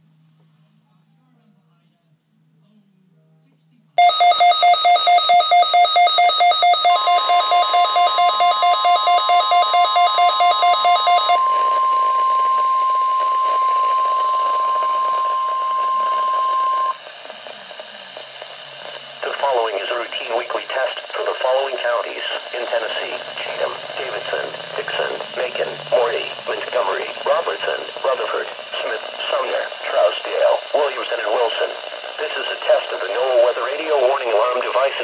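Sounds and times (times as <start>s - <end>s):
rapid electronic beeping: 4.0s - 17.0s, 19.0s - 30.0s
steady warning alarm tone: 4.0s - 17.0s.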